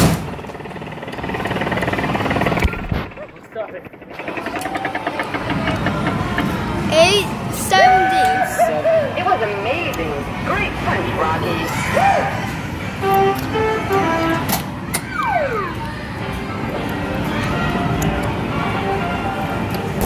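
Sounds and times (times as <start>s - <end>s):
background chatter: 0.5s - 20.0s.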